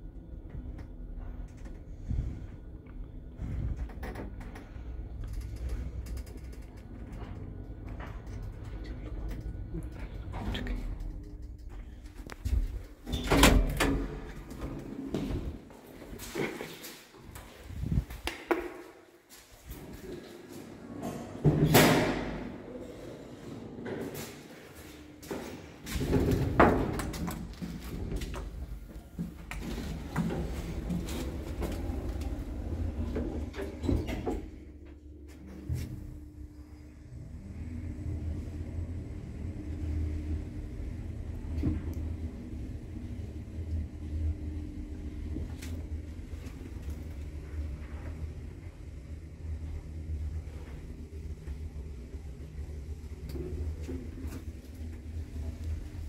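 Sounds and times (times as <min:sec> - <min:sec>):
lift running hum: 0:00.0 - 0:18.9, 0:19.5 - 0:56.0
sliding doors clunking: 0:25.9 - 0:34.7.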